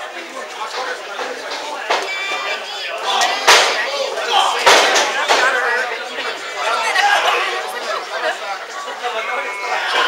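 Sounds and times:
audience chatter and calling out: 0.0s - 10.0s.

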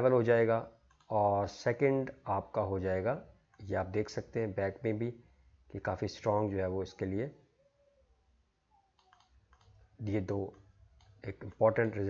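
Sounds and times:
faint computer mouse clicks: 9.0s - 9.8s.

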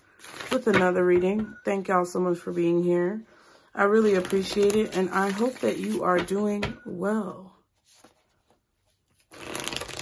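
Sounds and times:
cards being shuffled: 4.0s - 6.0s, 9.3s - 10.0s.

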